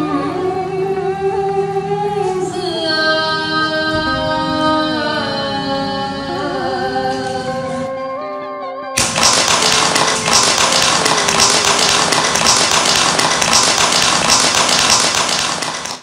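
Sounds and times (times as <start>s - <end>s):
faint music: 0.0s - 8.3s
group applauding: 9.0s - 16.0s.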